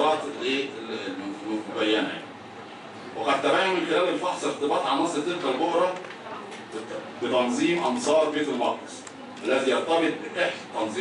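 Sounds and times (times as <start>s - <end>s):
man reading into microphones: 6.8s - 11.0s.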